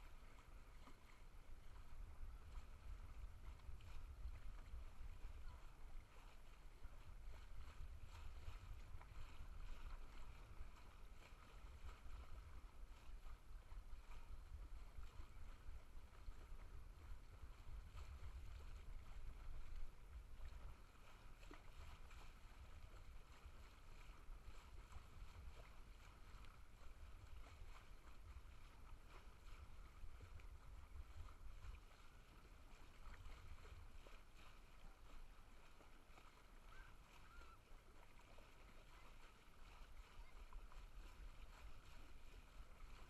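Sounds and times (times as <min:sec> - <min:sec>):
faint low rumble: 0:00.0 - 0:43.0.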